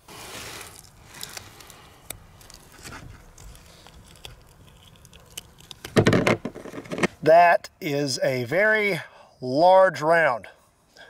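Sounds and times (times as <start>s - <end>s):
soft handling sounds: 0.2s - 7.2s
thump or rustle: 5.9s - 7.2s.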